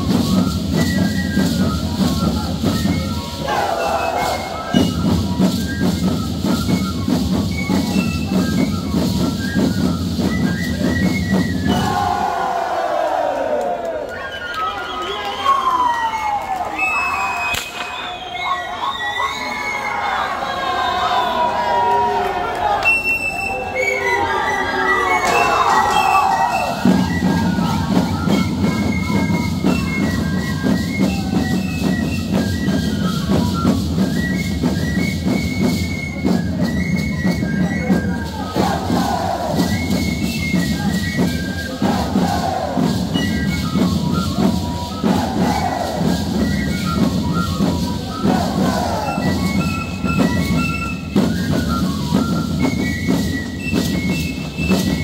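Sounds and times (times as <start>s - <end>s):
crowd shouting: 3.3s - 4.8s, 11.7s - 28.6s, 38.3s - 39.7s, 41.8s - 43.0s, 45.0s - 46.3s, 48.1s - 49.4s
steady drum beat: 38.1s - 50.5s.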